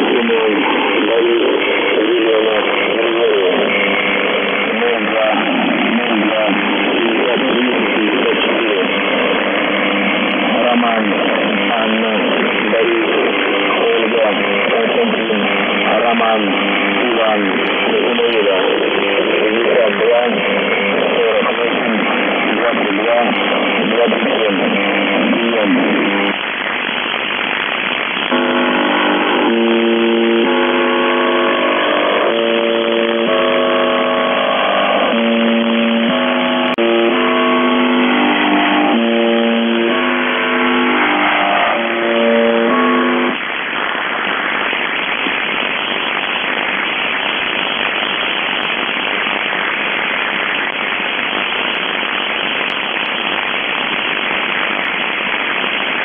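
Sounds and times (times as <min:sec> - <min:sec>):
radio static hiss: 0:00.0 - 0:56.0
stepped pitched radio tones: 0:00.0 - 0:56.0.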